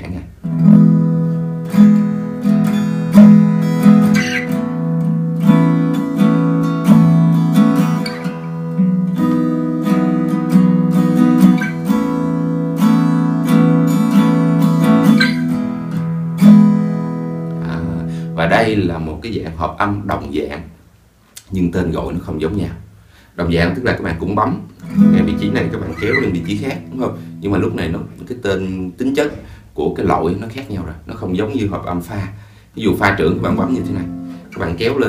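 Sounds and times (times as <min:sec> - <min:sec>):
acoustic guitar chords: 0:00.3 - 0:18.9, 0:24.5 - 0:29.6, 0:32.8 - 0:35.0.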